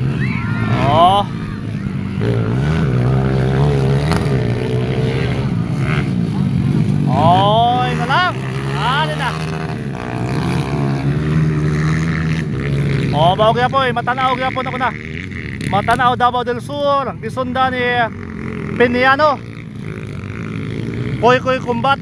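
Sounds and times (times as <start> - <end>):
motorcycle revving past: 0.0 - 16.0, 17.8 - 22.0
motorcycle engines droning: 0.0 - 22.0.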